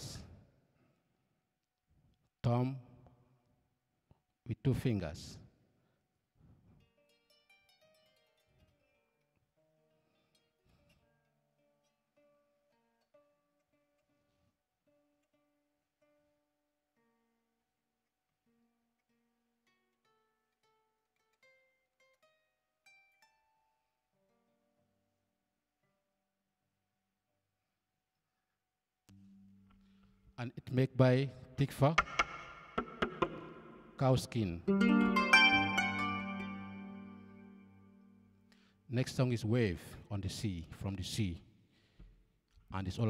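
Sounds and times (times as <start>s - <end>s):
harp-lute plucked notes: 32.0s - 38.4s.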